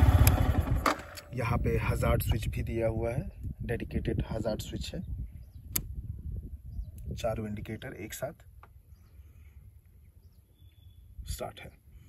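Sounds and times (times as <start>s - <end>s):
steady low rumble: 0.0s - 4.5s.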